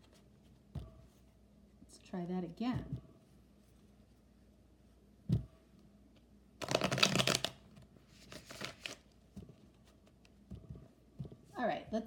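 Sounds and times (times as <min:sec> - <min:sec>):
cards being shuffled: 0:06.6 - 0:09.1.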